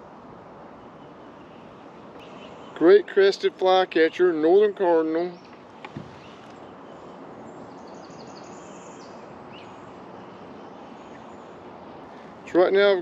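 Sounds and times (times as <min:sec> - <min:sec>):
faint bird calls: 0:01.0 - 0:02.8, 0:05.4 - 0:12.4.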